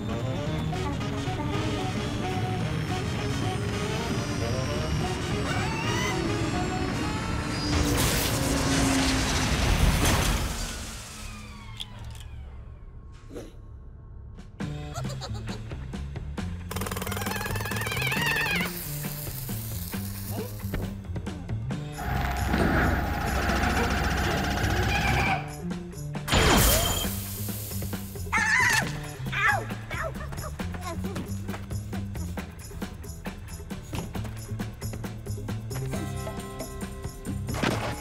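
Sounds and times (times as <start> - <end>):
background music: 0.0 - 7.7, 13.2 - 38.0
rising whine: 0.0 - 13.2
jackhammer rattling: 22.0 - 25.2.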